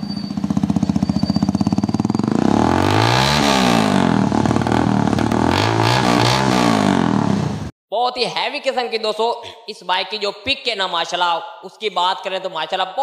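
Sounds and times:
motorcycle engine revving: 0.0s - 7.7s.

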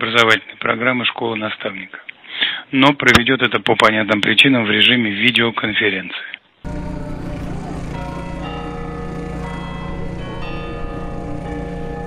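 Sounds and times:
bells ringing: 6.7s - 12.0s
steady low rumble: 6.7s - 12.0s.

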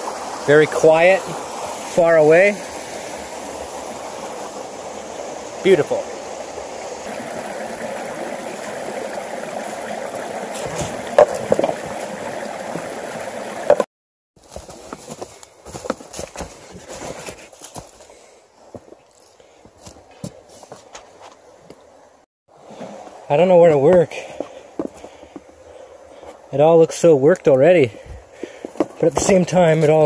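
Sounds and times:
quieter running water: 0.0s - 15.2s, 19.1s - 30.0s
river rushing over rocks: 7.1s - 13.8s
footsteps over river stones: 9.6s - 21.8s, 23.0s - 25.6s, 27.3s - 30.0s.

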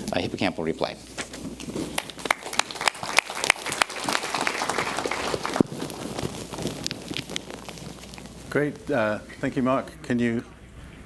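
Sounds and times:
audience applause: 2.0s - 6.6s.

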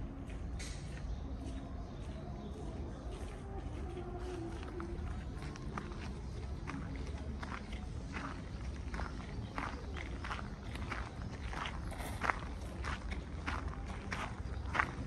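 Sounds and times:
footsteps on gravel: 0.3s - 15.0s.

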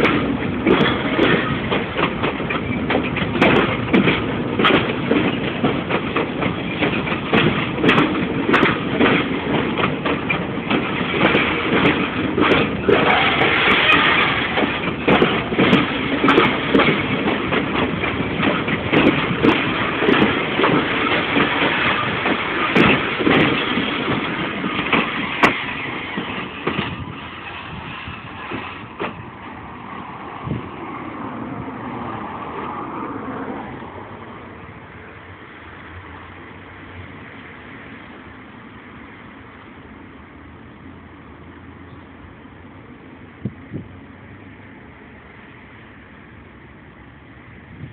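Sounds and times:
train wheels knocking and clacking: 0.0s - 29.8s
freight train rumbling past: 0.0s - 47.9s.

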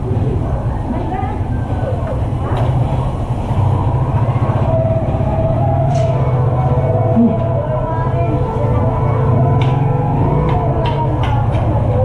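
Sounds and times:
faint voices: 0.0s - 12.0s
vehicle engine rumbling: 0.0s - 12.0s.

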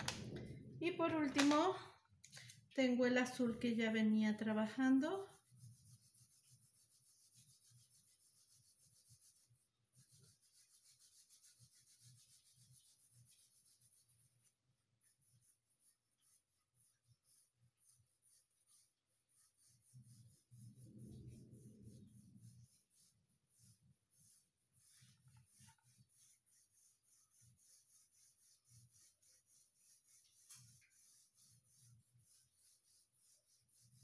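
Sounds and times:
pencil scratching on paper: 4.7s - 34.0s.

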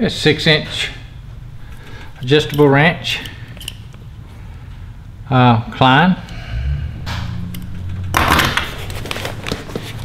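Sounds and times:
tools clicking: 1.8s - 4.0s.

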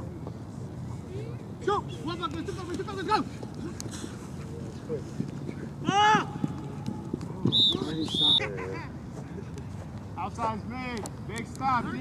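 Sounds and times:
referee's whistle blasts: 7.5s - 8.4s.

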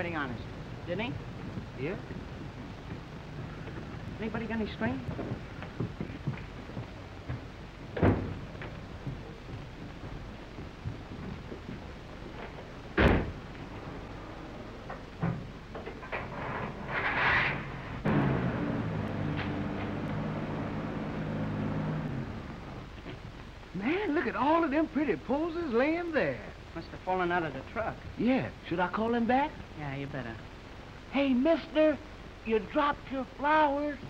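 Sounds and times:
film soundtrack hiss and crackle: 0.0s - 34.0s
truck engine running: 18.0s - 23.7s.

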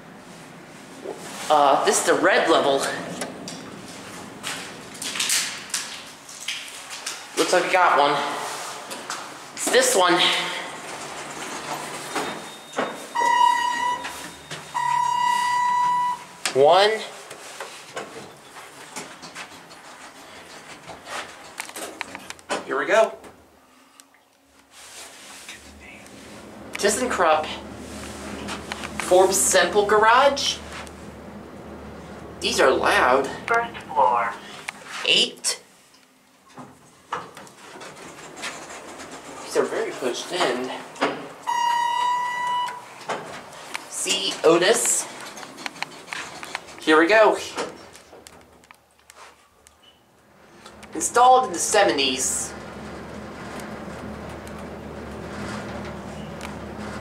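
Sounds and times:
elevator running hum: 2.1s - 5.2s, 10.4s - 16.4s, 25.2s - 34.7s, 37.6s - 46.8s, 50.2s - 57.0s
elevator beeps: 11.6s - 16.4s, 41.4s - 43.1s, 56.0s - 56.5s.

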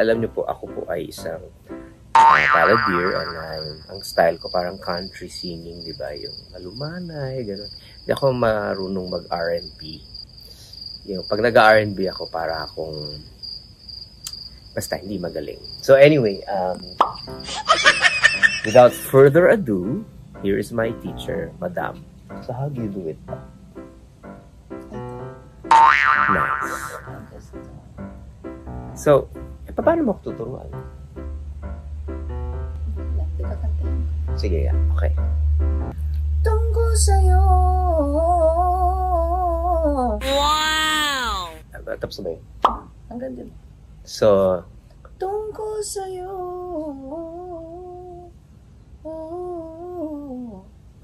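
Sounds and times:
soft keyboard music: 0.0s - 4.1s, 18.3s - 25.7s, 27.1s - 33.6s
person singing high note: 40.2s - 41.6s.

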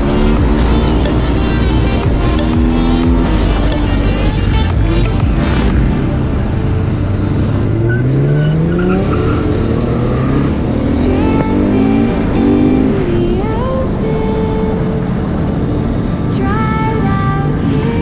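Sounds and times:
background music: 0.0s - 18.0s
vehicle engine accelerating: 0.0s - 18.0s.

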